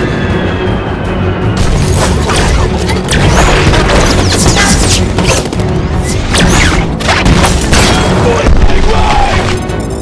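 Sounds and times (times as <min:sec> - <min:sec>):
dramatic score music: 0:00.0 - 0:10.0.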